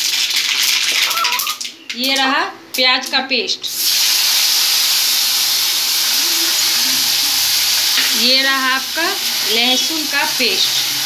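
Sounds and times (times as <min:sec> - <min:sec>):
onion paste sizzling in oil: 0:03.7 - 0:11.0.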